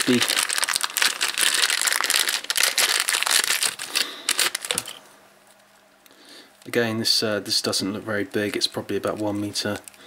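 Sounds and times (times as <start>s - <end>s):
plastic bag crinkling: 0.0s - 5.0s.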